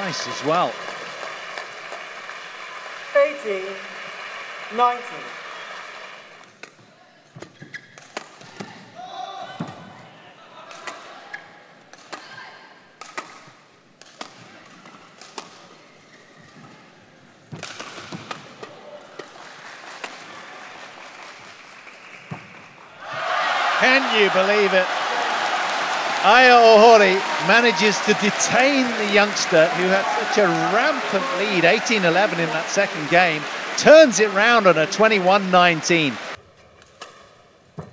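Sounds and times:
murmuring arena crowd: 23.0 - 36.4.

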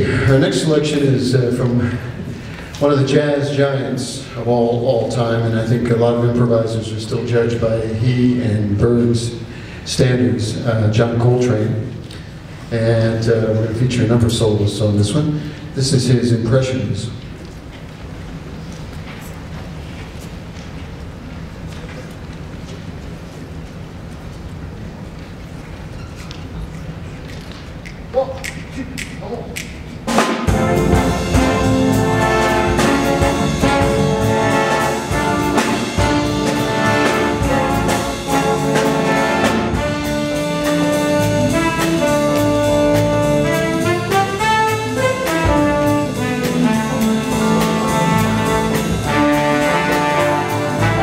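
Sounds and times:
bass and drums: 28.4 - 51.0
jazz big band playing: 29.9 - 51.0
horns playing sustained chords: 30.5 - 51.0.

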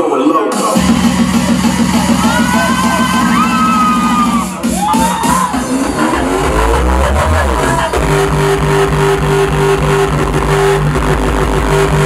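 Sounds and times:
electronic dance music: 0.0 - 12.0
rising synth sweep: 0.8 - 12.0.

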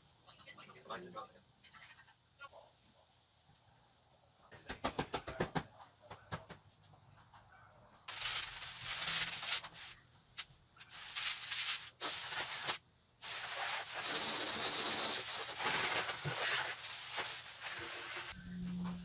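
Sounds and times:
hose nozzle spraying water: 8.1 - 10.0, 10.8 - 18.4.

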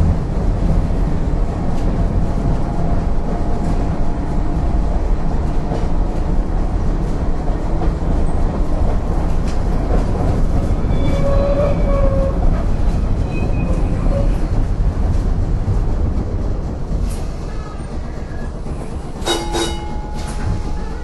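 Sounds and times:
streetcar rumbling on track: 0.0 - 21.0
ringing metallic strikes: 19.2 - 20.7.

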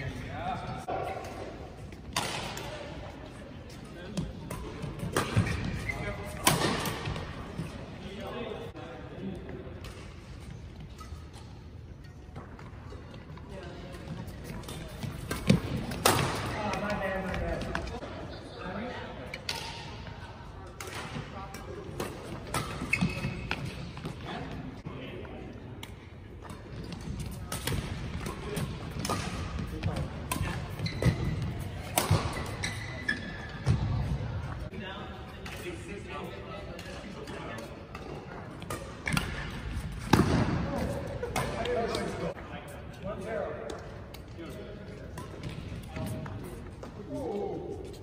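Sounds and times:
court shoes squeaking: 0.0 - 8.6, 9.8 - 24.8, 25.8 - 48.0
rackets striking shuttlecock: 25.8 - 32.6.

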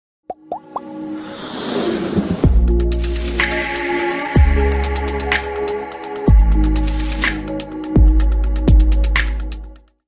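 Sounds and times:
pops gliding upward in pitch: 0.3 - 1.0.

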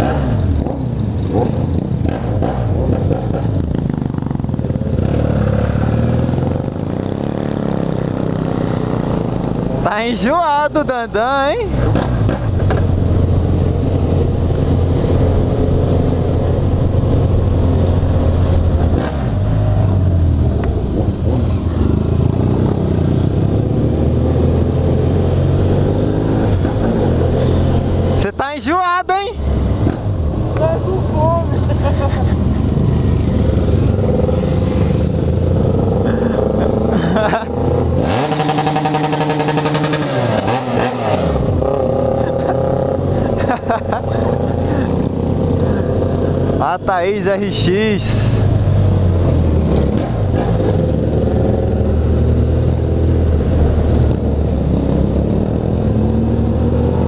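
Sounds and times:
motorcycle engine revving: 0.0 - 57.0
other motorcycles running: 0.0 - 57.0.

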